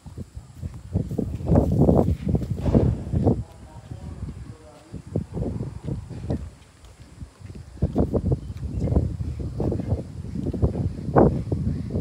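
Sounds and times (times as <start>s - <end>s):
footsteps: 0.1s - 12.0s.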